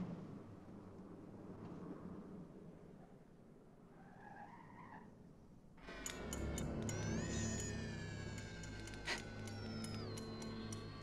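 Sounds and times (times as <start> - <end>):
faint tyre squeal: 3.9 - 5.1.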